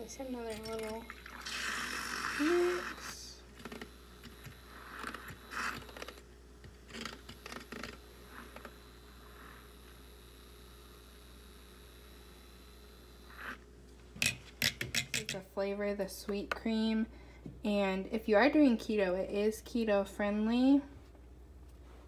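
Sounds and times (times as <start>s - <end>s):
milk frother whirring: 0.0s - 15.4s.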